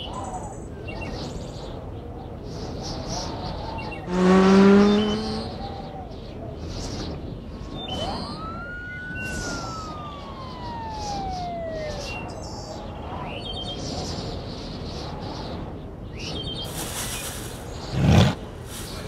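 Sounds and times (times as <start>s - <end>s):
police siren wail: 3.8s - 6.5s, 7.4s - 14.2s.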